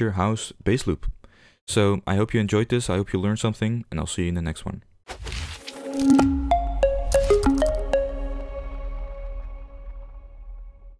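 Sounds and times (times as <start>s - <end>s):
deep bass tone: 6.2s - 10.9s.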